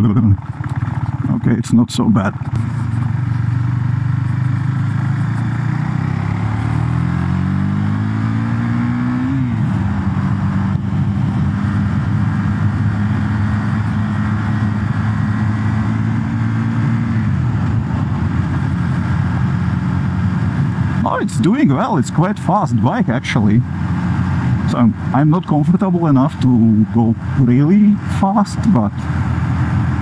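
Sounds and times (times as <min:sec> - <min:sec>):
motorcycle engine accelerating: 0:00.0 - 0:30.0
wind noise: 0:05.0 - 0:21.5.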